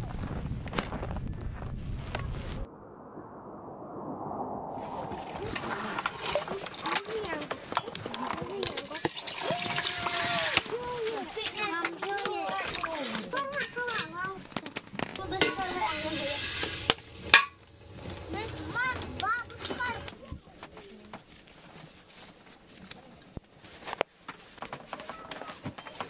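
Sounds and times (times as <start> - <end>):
kettle hissing on stove: 15.4 - 19.8.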